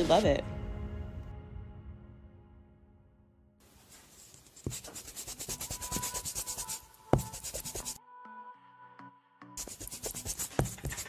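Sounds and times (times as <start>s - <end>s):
pen scribbling on paper: 4.0s - 8.0s, 9.6s - 11.0s.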